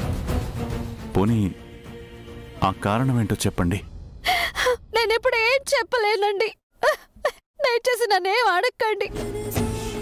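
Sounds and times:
woman sobbing: 0:06.8 - 0:07.4.

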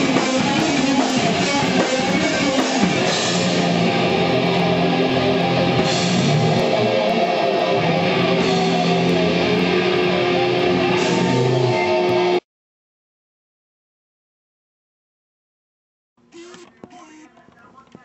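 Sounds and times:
distorted electric guitars: 0:00.0 - 0:12.4.

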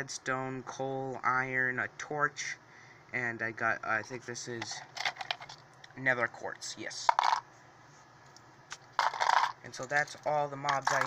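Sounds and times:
plastic pieces clattering in cup: 0:04.6 - 0:05.6, 0:07.1 - 0:07.4, 0:09.0 - 0:11.0.

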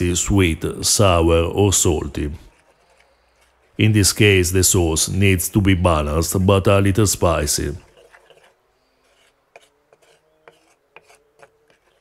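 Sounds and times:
wooden spoon scraping stone mortar: 0:00.0 - 0:04.7, 0:07.4 - 0:12.0.

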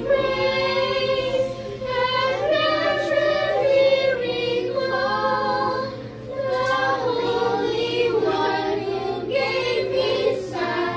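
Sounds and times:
children singing: 0:00.0 - 0:10.9.

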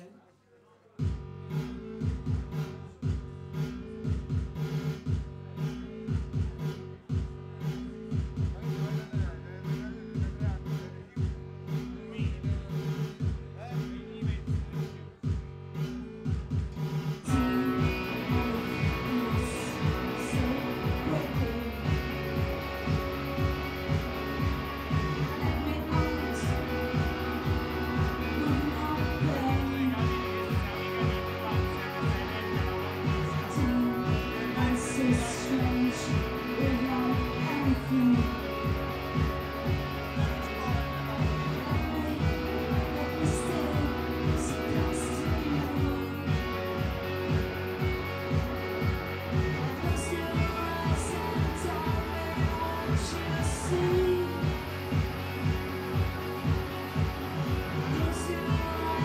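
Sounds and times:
pulsing low beat: 0:01.0 - 0:59.0
live band playing: 0:17.2 - 0:59.0.

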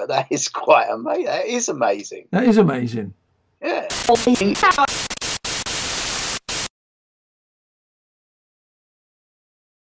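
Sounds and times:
tv static hiss: 0:03.7 - 0:06.7.

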